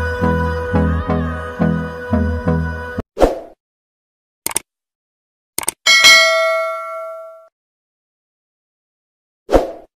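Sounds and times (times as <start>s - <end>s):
notification bell ding: 5.9s - 7.5s.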